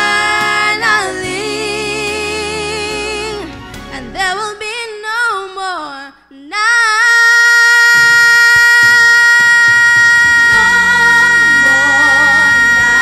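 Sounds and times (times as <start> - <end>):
girls singing gospel song: 0.0 - 13.0.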